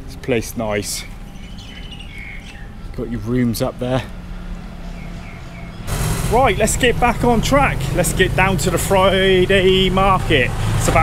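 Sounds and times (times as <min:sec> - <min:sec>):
birds calling faintly: 0:00.0 - 0:06.8.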